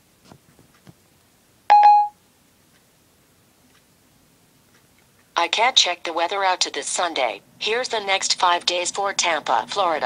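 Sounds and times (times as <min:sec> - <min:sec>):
two-note electronic beep: 0:01.7 - 0:02.2.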